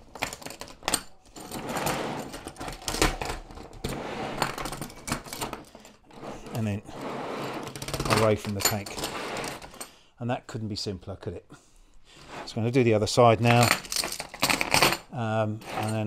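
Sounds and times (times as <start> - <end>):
metal track links clattering: 0.0 - 6.2, 7.6 - 9.9, 13.4 - 15.1.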